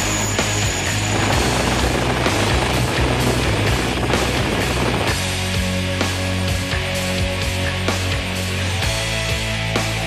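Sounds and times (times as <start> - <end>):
helicopter rotor and engine: 0.0 - 5.4
loud rock music: 0.0 - 10.0.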